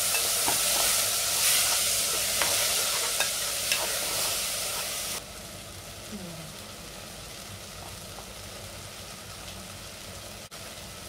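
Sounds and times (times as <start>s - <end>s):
spoon stirring and scraping: 0.0s - 5.1s
food sizzling in a pan: 0.0s - 11.0s.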